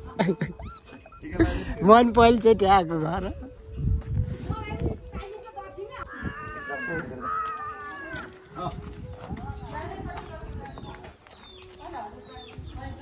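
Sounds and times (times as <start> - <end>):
high drawn-out falling calls: 5.9 - 8.5
people talking: 8.6 - 11.2, 11.8 - 13.0.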